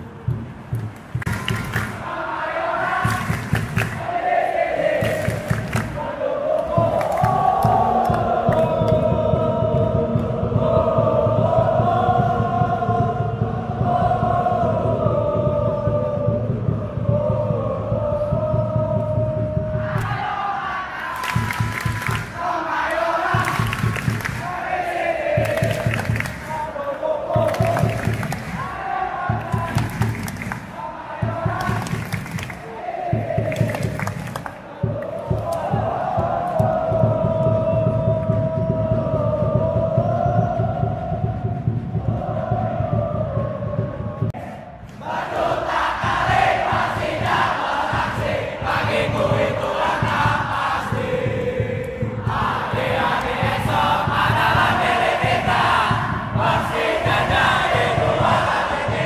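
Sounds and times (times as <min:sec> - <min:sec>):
rhythmic drum beats: 0:00.0 - 0:59.0
stadium crowd chanting and singing: 0:00.0 - 0:59.0.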